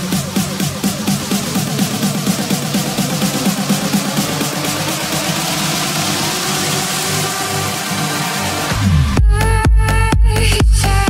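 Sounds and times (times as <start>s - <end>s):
steady wash of noise: 0.0s - 8.8s.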